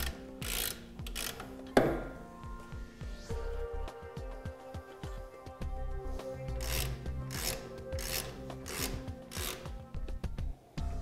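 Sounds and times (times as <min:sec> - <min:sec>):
rhythmic rasping strokes: 0:05.7 - 0:10.3.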